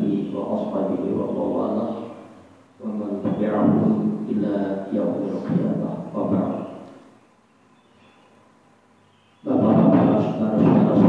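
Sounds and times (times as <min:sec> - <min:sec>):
man's voice with drawn-out tones: 0:00.0 - 0:06.8, 0:09.4 - 0:11.0
faint steady hum: 0:00.0 - 0:11.0.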